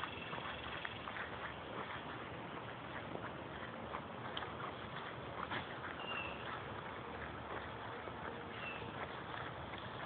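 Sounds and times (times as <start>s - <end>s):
goats moving on grass: 0.0s - 10.0s.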